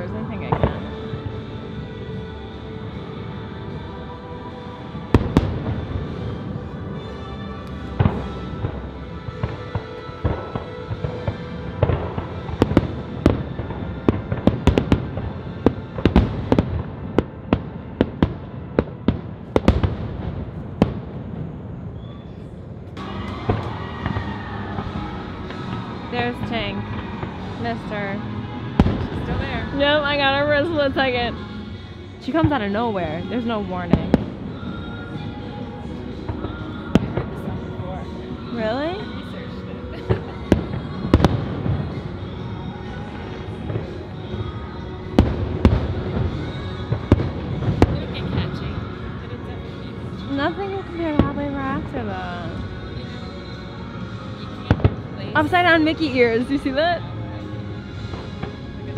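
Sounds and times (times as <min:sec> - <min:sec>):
music playing: 0:00.0 - 0:21.4, 0:23.0 - 0:58.9
fireworks banging: 0:28.7 - 0:31.3.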